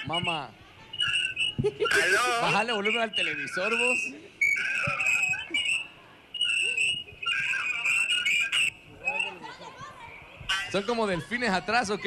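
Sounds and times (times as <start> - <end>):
high-pitched feedback squeal: 0.0 - 9.4
host talking: 1.9 - 5.7.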